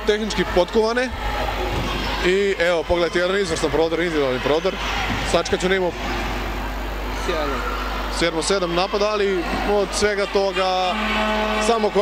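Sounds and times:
sports hall din: 0:00.0 - 0:12.0.

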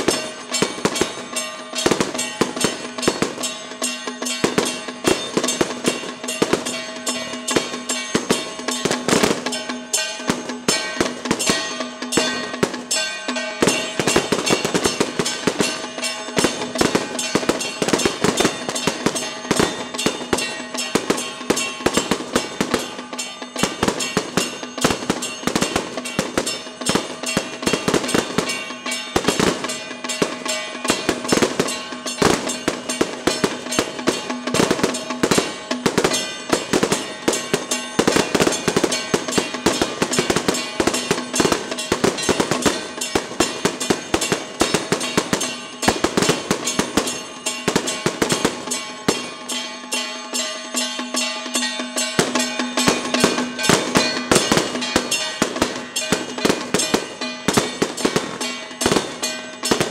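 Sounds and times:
procession music with drums: 0:00.0 - 0:59.9.

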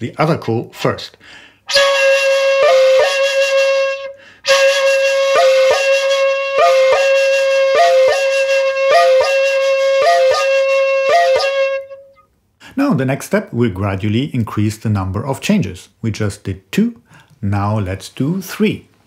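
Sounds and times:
bamboo flute playing: 0:01.7 - 0:12.2.

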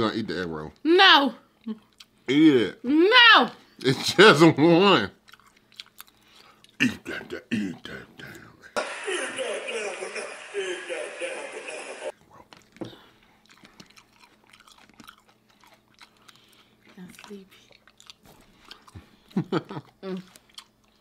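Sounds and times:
chewing and biting food: 0:01.6 - 0:02.2, 0:05.1 - 0:06.8, 0:12.1 - 0:21.0.

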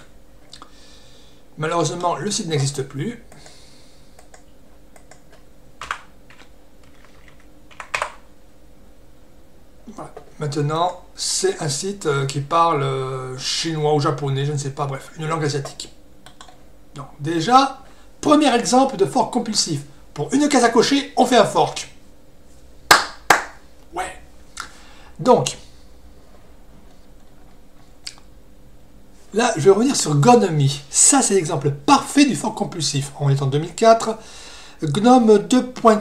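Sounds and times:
keyboard clatter: 0:05.0 - 0:08.2
sharp hand claps: 0:22.9 - 0:23.6.

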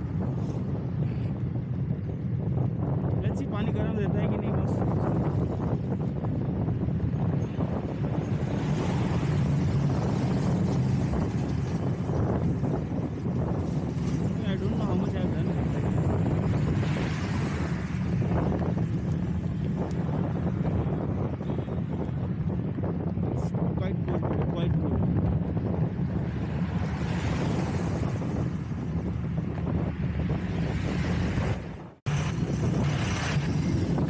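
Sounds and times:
low rumble of tyres on road: 0:00.0 - 0:34.0
wind rushing on microphone: 0:00.0 - 0:34.0.

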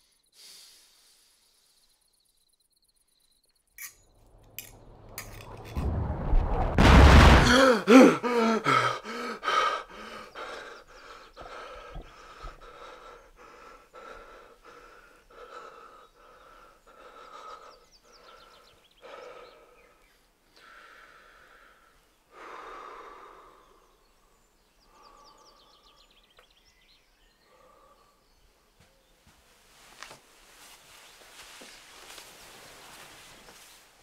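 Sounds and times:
man breathing hard: 0:07.4 - 0:26.3, 0:27.3 - 0:28.4.

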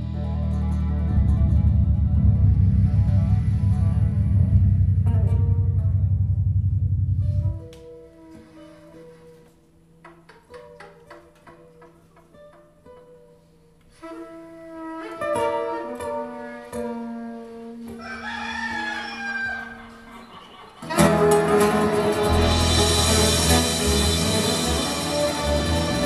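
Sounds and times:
acoustic guitars picking: 0:00.0 - 0:09.4, 0:20.5 - 0:26.0
soprano saxophone: 0:13.9 - 0:18.0
percussion: 0:20.5 - 0:26.0.

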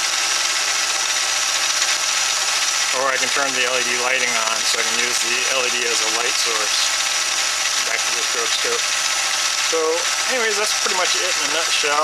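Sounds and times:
lathe motor whirring: 0:00.0 - 0:12.0
steady high whine: 0:00.0 - 0:12.0.

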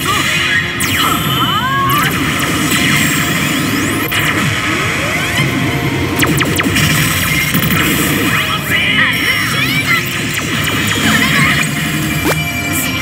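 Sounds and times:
electronic game music: 0:10.9 - 0:13.0.

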